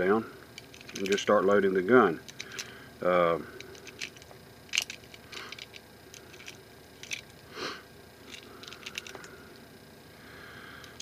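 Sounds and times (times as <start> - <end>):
small metallic clicks: 0.6 - 1.2, 3.6 - 7.4.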